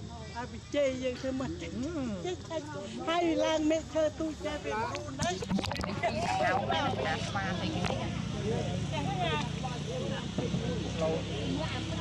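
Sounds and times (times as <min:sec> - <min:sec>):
people talking: 0:00.1 - 0:12.0
low engine hum: 0:04.3 - 0:12.0.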